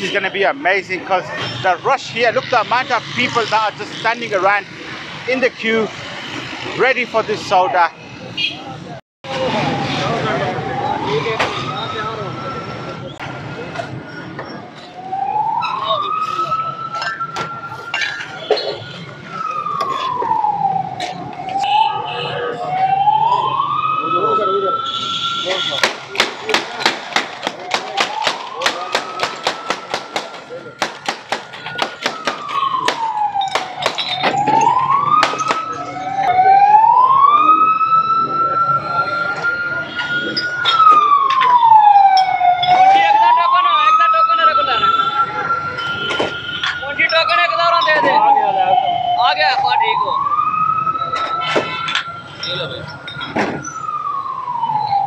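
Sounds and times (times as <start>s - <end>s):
emergency siren wailing: 0.0s - 8.3s, 9.2s - 55.0s
crowd chatter: 6.7s - 55.0s.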